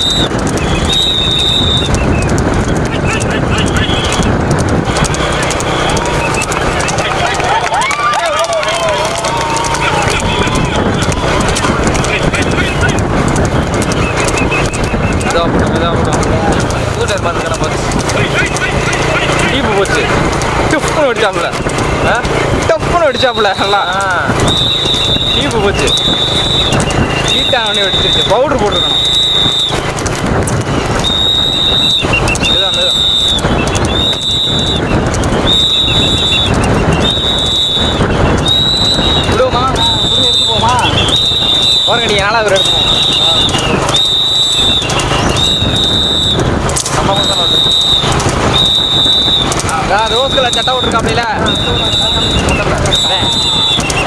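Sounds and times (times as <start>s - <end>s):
rumble of vehicles: 0.0s - 54.0s.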